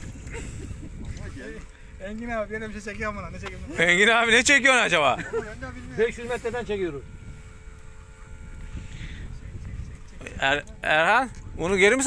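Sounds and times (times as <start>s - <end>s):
faint steady hum: 0.0s - 12.0s
wind rumble on microphone: 0.0s - 12.0s.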